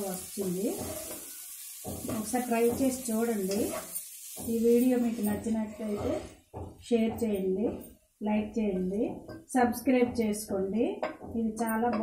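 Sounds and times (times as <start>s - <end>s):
food sizzling: 0.0s - 6.4s
spatula stirring and scraping pot: 0.2s - 6.6s.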